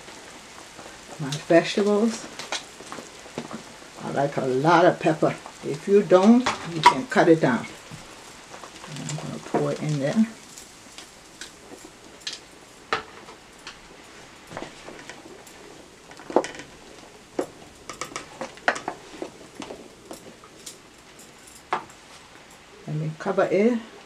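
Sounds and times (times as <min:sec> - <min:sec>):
pot simmering: 0:00.0 - 0:22.9.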